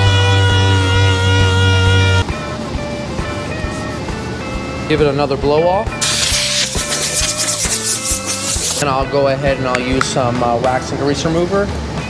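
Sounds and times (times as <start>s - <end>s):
background music: 0.0s - 12.0s
compressed air blow gun rushing: 6.0s - 8.8s.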